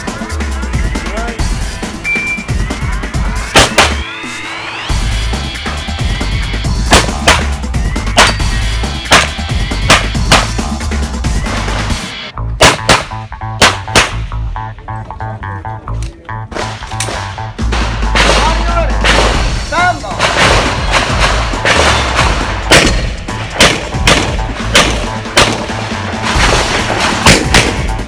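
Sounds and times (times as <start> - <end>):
background music with steady beat: 0.0 - 28.0
pistol shots: 3.6 - 4.0, 9.1 - 10.6, 12.6 - 14.2, 20.2 - 28.0.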